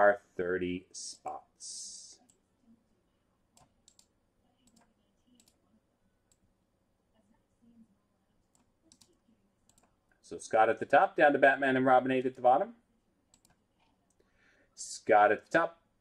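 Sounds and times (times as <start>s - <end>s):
mouse and keyboard clicks: 8.5s - 10.0s.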